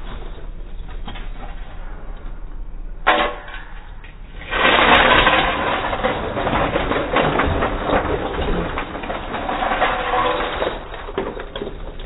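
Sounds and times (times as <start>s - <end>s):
ice cubes clattering: 4.5s - 12.0s.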